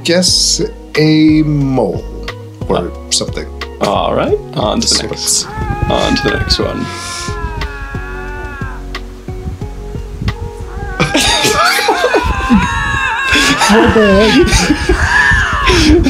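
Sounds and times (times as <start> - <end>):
lynx yowling: 5.2 - 9.2, 10.5 - 16.0.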